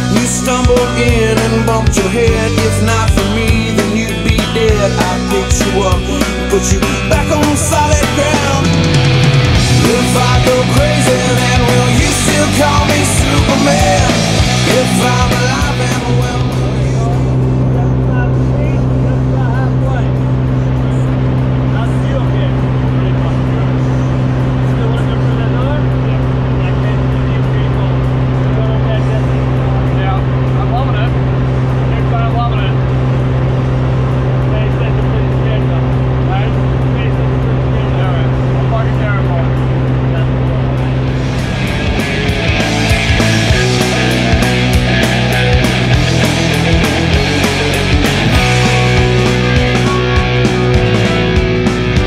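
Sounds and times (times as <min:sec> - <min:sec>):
music: 0:00.0 - 0:52.0
propeller plane engine droning: 0:00.0 - 0:52.0
faint voices: 0:13.5 - 0:47.6.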